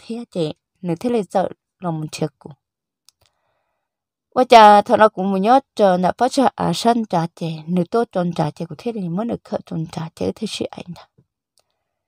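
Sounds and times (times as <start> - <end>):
storytelling voice: 0.0 - 2.6, 4.4 - 11.0.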